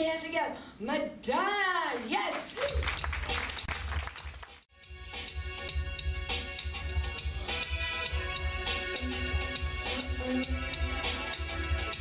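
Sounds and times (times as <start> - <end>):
audience applause: 2.3 - 4.6
backing track with heavy bass: 4.8 - 12.0.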